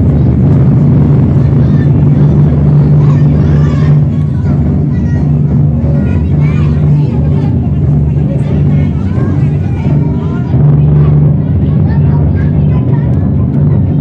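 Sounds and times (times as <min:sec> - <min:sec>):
indistinct chatter of voices: 0:00.0 - 0:14.0
loud low-pitched drone: 0:00.0 - 0:14.0.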